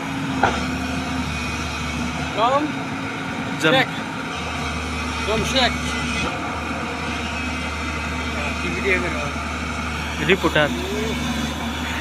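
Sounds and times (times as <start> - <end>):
heavy diesel engine idling: 0.0 - 12.0.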